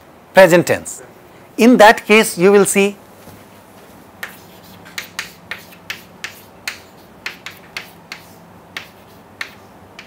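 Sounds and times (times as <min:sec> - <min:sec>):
chalk tapping on blackboard: 0:04.2 - 0:10.0.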